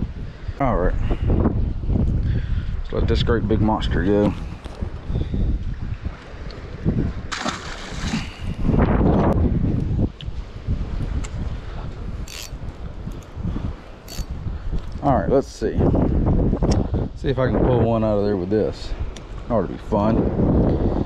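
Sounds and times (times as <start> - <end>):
wind buffeting microphone: 0.0 - 21.0
fish splashing into water: 7.3 - 8.4.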